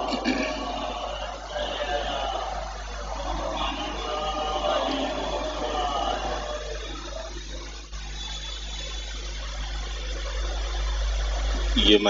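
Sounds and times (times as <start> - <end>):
faint voices: 0.0 - 12.0
microphone room hiss and hum: 0.0 - 12.0.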